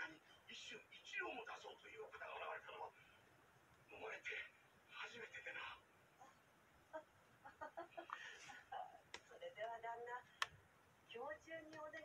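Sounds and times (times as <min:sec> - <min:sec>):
faint television voices: 0:00.0 - 0:12.0.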